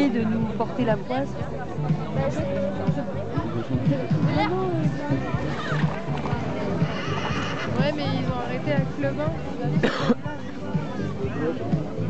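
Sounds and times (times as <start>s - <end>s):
background music: 0.0s - 12.0s
people chattering: 0.0s - 12.0s
horse whinnying: 6.8s - 7.9s.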